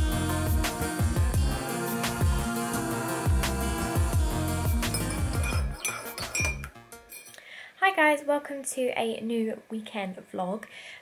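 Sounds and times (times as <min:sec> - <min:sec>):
background music: 0:00.0 - 0:07.7
teaspoon clinking in ceramic mug: 0:04.9 - 0:07.4
woman speaking: 0:07.8 - 0:10.7.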